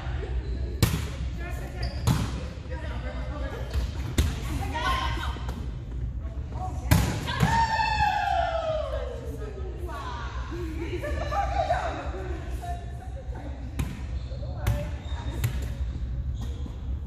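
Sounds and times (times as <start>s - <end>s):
volleyball slaps: 3.7s - 4.6s, 6.8s - 7.8s.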